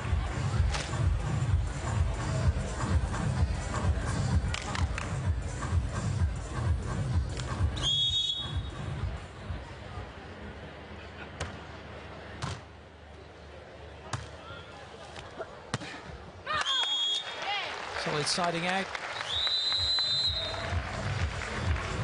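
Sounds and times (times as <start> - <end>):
referee's whistle blowing: 7.8 - 8.8, 16.6 - 17.4, 19.2 - 20.6
sharp volleyball hits: 12.4 - 12.7.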